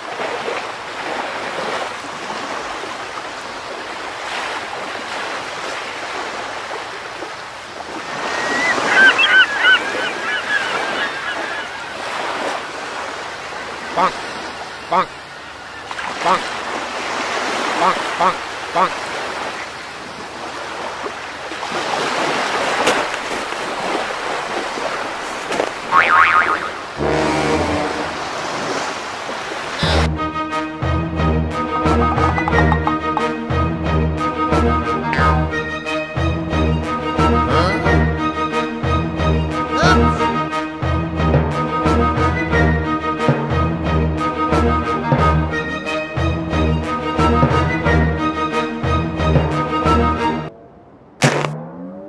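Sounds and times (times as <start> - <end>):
ocean waves washing: 0.0 - 52.0
high seabird calls: 8.1 - 12.9, 13.7 - 16.6, 17.6 - 19.7, 25.9 - 28.0.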